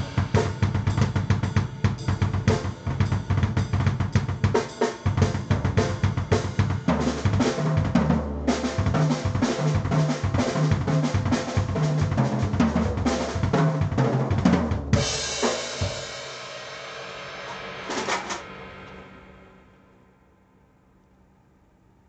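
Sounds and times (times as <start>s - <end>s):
cymbal crash ringing: 0.0s - 3.3s
drum kit played fast: 0.0s - 19.5s.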